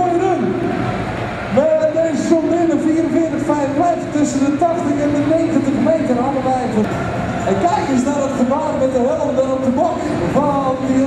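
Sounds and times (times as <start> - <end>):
man talking over loudspeakers: 0.0 - 0.7, 1.5 - 11.0
tractor engine running: 0.0 - 11.0.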